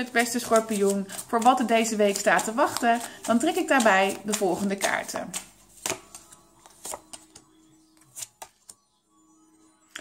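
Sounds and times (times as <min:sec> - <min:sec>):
cards tapping on wooden table: 0:05.3 - 0:07.4.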